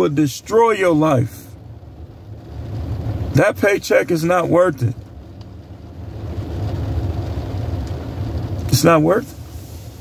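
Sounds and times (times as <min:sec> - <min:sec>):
low vehicle rumble inside car: 0:00.0 - 0:10.0.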